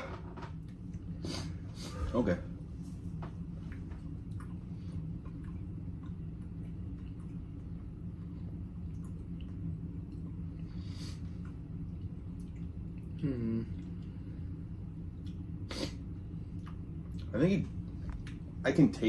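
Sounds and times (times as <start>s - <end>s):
low hum: 0.0s - 19.0s
people chewing with wet smacks: 3.2s - 14.3s, 14.9s - 18.6s.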